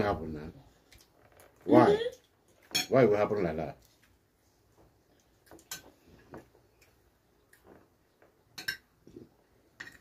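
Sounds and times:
cutlery clicking on plates: 8.6s - 8.9s.

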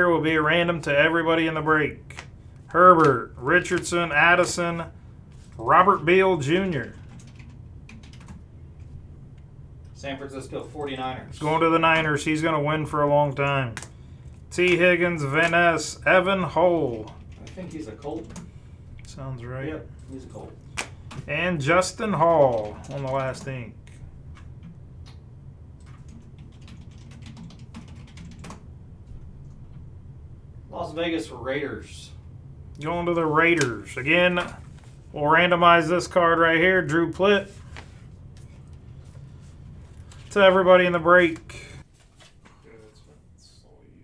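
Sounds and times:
typing on computer keyboard: 6.8s - 8.4s, 16.8s - 18.5s, 22.1s - 23.6s, 25.8s - 28.6s.

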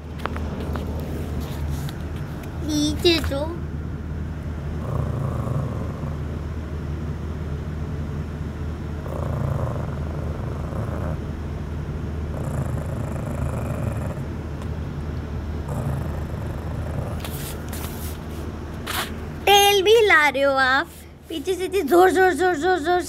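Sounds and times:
steady low drone: 3.6s - 19.5s
puppy growling low: 4.7s - 6.5s, 9.0s - 11.4s, 12.2s - 14.6s, 15.6s - 18.1s.

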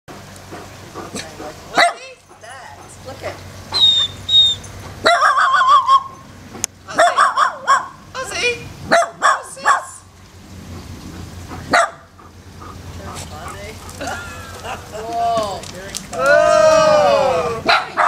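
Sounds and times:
small dog barking: 1.8s - 2.1s, 5.0s - 6.1s, 6.9s - 8.0s, 8.9s - 9.9s, 11.7s - 12.1s, 17.6s - 18.0s.

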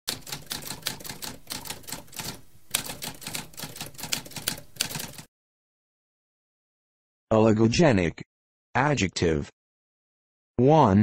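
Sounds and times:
typewriter typing rapidly: 0.1s - 5.3s.

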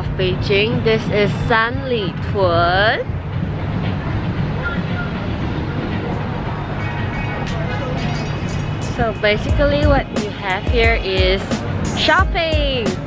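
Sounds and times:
background crowd noise: 0.0s - 13.0s
traffic rumble: 0.0s - 13.0s.

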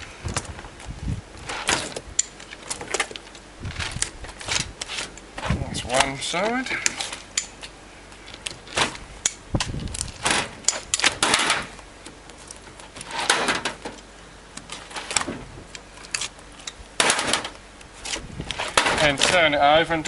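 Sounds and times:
hand tool clicks and scrapes: 5.9s - 8.6s, 9.2s - 11.6s, 14.6s - 19.5s.

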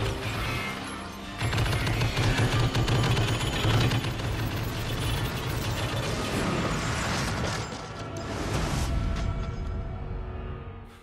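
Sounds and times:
film score: 0.0s - 11.0s.

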